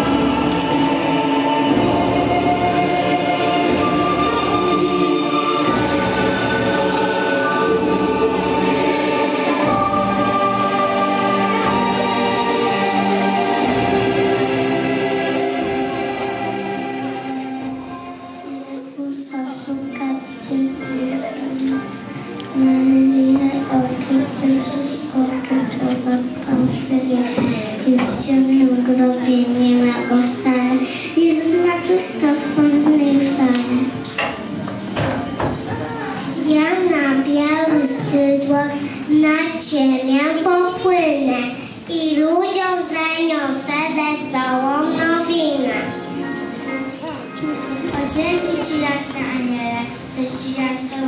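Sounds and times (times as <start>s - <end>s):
choir singing long held notes: 0.0s - 19.0s
low hall noise: 0.0s - 51.0s.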